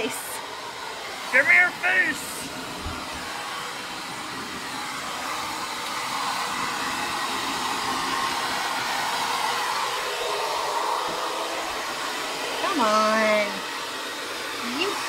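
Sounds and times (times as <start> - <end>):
hair dryer blowing: 0.0 - 15.0.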